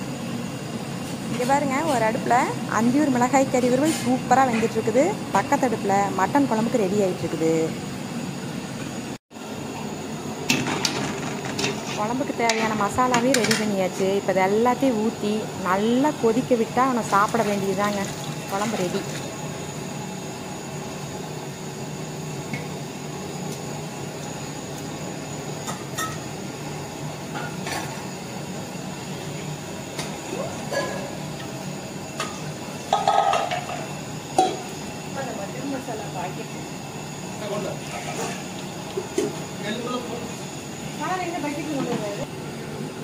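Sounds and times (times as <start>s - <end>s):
cooking pots clanking together: 32.2s - 33.8s.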